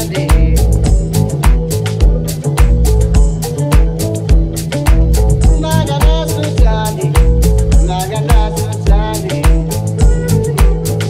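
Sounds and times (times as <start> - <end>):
downtempo house music: 0.0 - 11.0.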